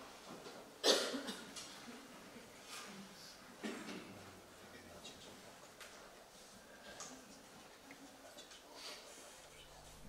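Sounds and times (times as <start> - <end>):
person coughing: 0.8 - 1.5.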